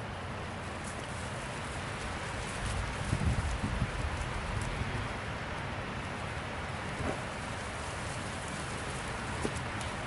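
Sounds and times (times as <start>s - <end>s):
wind noise on microphone: 1.7s - 5.4s.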